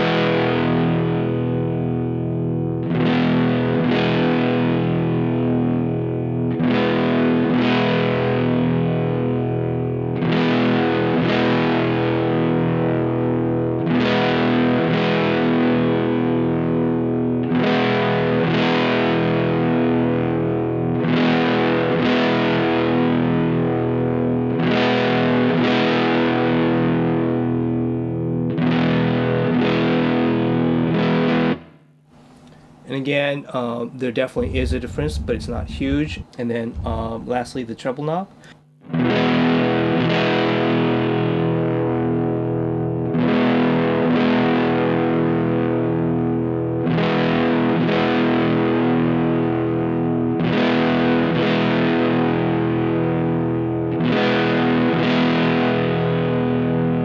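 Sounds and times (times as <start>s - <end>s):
overdriven electric guitar chords: 0.0s - 32.9s, 38.3s - 57.0s.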